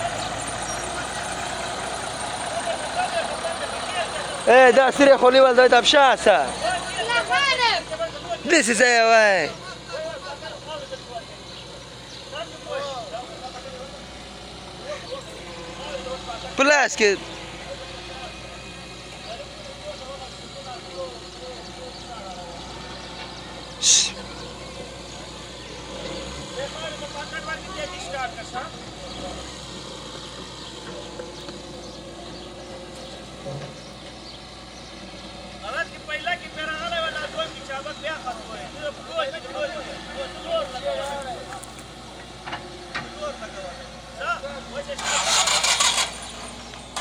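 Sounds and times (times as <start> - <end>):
diesel engines running: 0.0 - 47.0
voices calling: 0.0 - 47.0.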